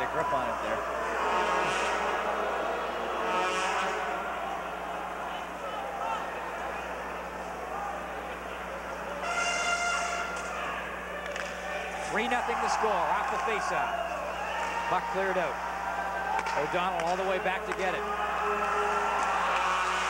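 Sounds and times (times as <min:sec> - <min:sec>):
arena crowd murmuring: 0:00.0 - 0:20.0
horn held note: 0:00.9 - 0:04.4, 0:09.2 - 0:10.5.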